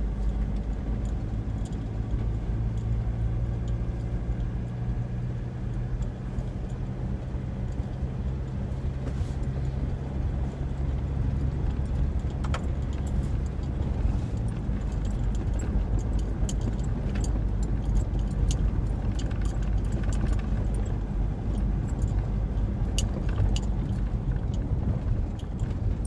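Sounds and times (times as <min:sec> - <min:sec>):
car engine and road rumble: 0:00.0 - 0:26.0
light ticks and rattles: 0:00.1 - 0:26.0.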